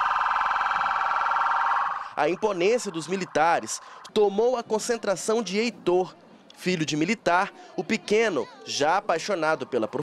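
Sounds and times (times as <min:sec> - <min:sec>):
police siren warbling: 0:00.0 - 0:04.1.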